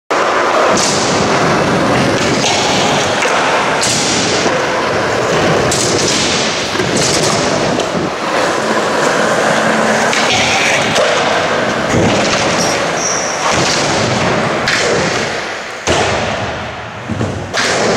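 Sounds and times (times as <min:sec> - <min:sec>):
skateboard wheels rolling: 0:00.1 - 0:17.9.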